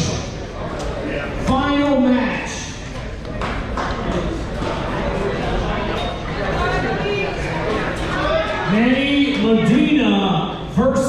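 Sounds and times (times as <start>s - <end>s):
echoing voices and chatter: 0.0s - 11.0s.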